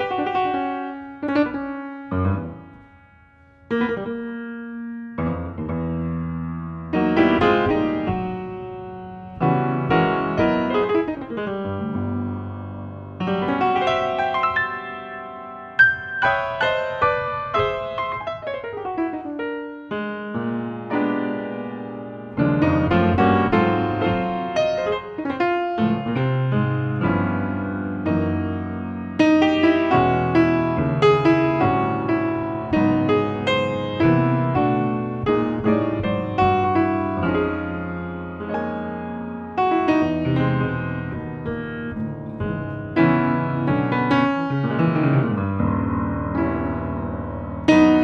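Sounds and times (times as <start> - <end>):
grand piano playing jazz: 0.0 - 48.0.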